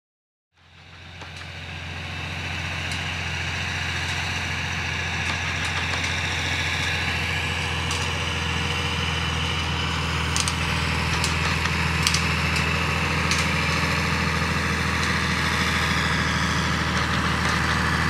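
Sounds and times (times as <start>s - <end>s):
tractor diesel engine running: 0.6s - 18.0s.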